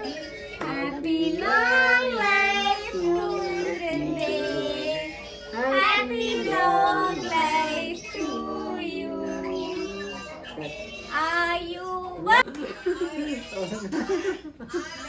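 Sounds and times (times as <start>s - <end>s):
voices singing a melody: 0.0s - 11.2s.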